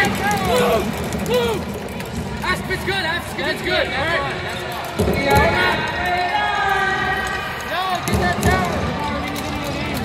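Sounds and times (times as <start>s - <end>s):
busy hall background noise: 0.0s - 10.0s.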